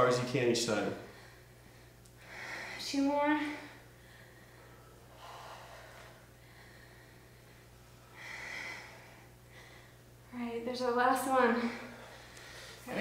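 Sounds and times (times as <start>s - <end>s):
low steady hum: 0.0s - 13.0s
person breathing heavily: 1.0s - 10.2s, 11.4s - 12.9s.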